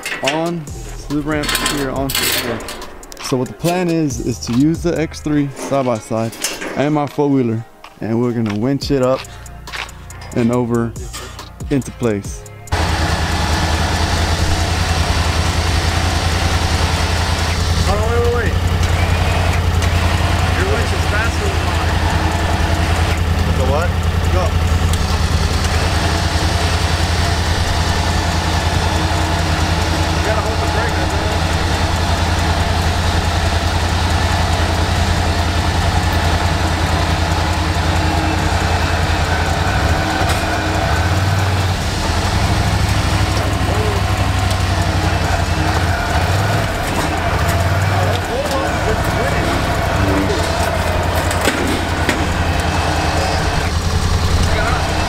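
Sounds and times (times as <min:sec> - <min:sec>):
vehicle engine idling: 0:00.0 - 0:06.4, 0:08.4 - 0:55.0.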